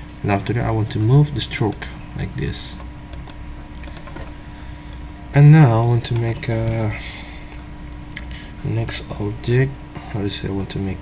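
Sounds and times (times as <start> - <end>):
low electrical hum: 0.0 - 11.0
faint computer clicks: 2.8 - 5.1.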